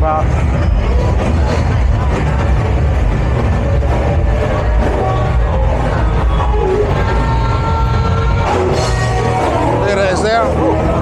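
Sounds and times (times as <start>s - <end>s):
loud bass-heavy music from bars: 0.0s - 11.0s.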